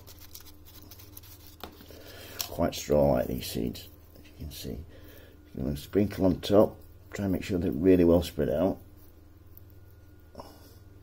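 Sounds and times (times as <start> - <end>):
paper packet rustling: 0.0 - 3.6
low steady hum: 0.0 - 11.0.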